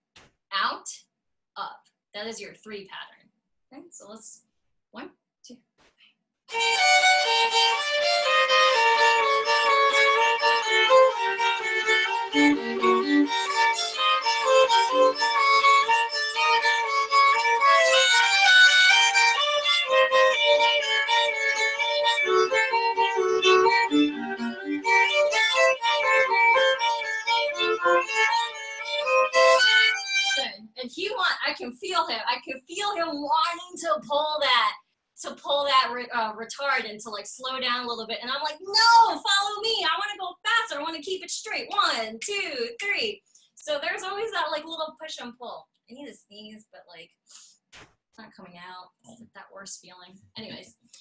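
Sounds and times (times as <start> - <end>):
violins playing a waltz: 6.5 - 29.9.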